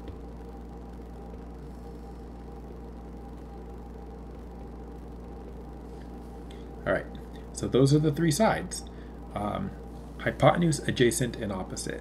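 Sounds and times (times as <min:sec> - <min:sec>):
background hum with hiss: 0:00.0 - 0:12.0.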